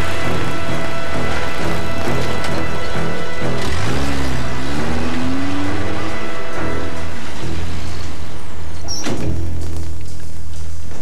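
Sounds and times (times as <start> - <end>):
film score with low drone: 0.0 - 11.0
van engine revving: 0.0 - 11.0.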